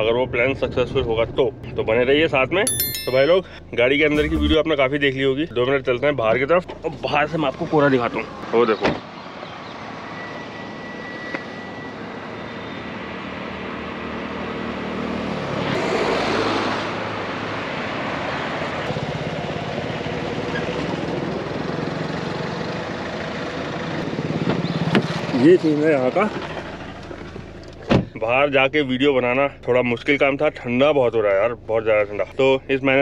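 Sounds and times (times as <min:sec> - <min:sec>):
road traffic engine drone: 0:06.9 - 0:27.9.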